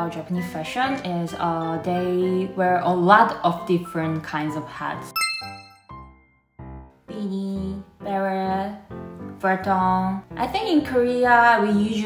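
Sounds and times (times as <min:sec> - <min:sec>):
bright chime ding: 0:05.2 - 0:06.2.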